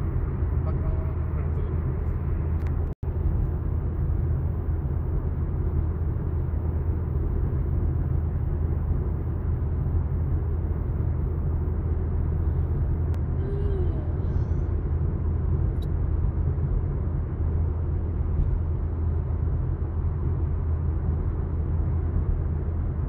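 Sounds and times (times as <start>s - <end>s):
car road and engine noise from inside: 0.0s - 23.0s.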